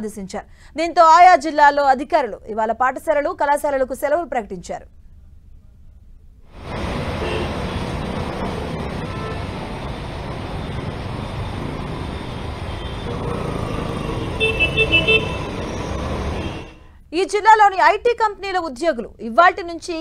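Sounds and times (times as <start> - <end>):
traffic on wet road: 6.6 - 16.8
vehicle horn short toots: 7.2 - 7.5, 14.3 - 15.6, 16.4 - 16.8.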